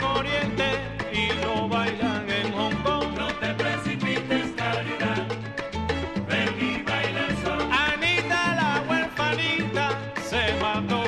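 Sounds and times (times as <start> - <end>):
salsa band instrumental on vinyl: 0.0 - 11.0.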